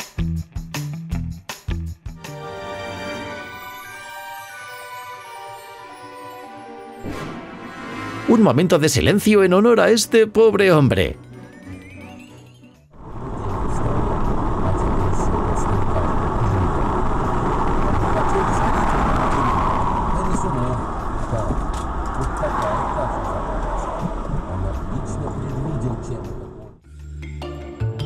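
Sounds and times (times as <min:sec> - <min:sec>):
car road and engine noise: 0:13.0 - 0:26.8.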